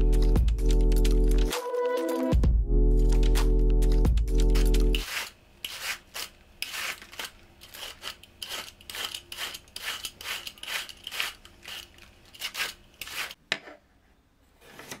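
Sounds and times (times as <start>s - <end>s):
peeler shredding cabbage: 4.4s - 13.4s.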